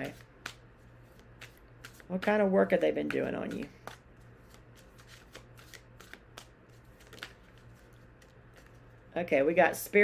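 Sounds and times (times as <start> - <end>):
cards being shuffled: 0.0 - 9.0.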